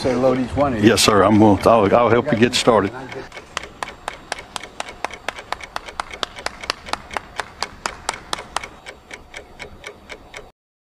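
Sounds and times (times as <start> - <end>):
person clapping hands: 3.5 - 8.8.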